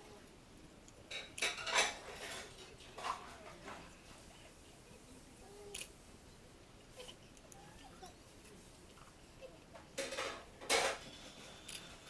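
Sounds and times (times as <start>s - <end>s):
light objects clinking and rattling: 0.9s - 4.3s.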